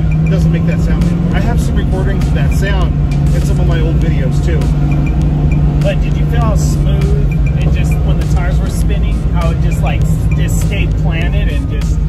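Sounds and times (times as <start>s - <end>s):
car engine running from inside cabin: 0.0s - 12.0s
voices: 0.0s - 12.0s.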